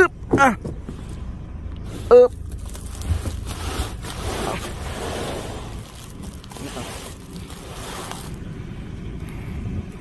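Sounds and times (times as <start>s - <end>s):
steady low rumble: 0.0s - 10.0s
sack rustling: 1.9s - 8.4s.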